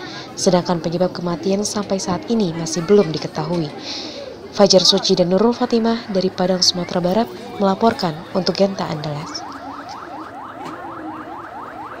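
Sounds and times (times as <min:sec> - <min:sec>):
emergency siren yelp: 0:08.2 - 0:12.0.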